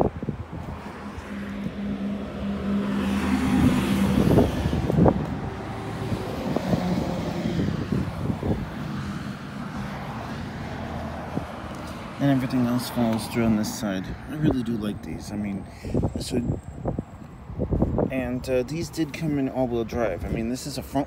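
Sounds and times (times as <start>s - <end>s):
engine hum: 0.0s - 21.0s
vehicle rushing past: 0.2s - 18.1s.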